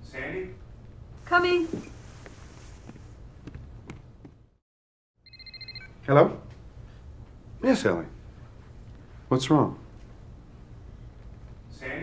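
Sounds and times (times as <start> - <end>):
telephone ringing electronic trill: 5.2 - 5.9.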